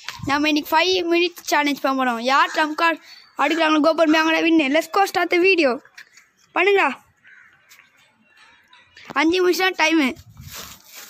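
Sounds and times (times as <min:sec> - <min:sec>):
faint background noise: 0:00.0 - 0:11.0
crow cawing: 0:07.1 - 0:07.9.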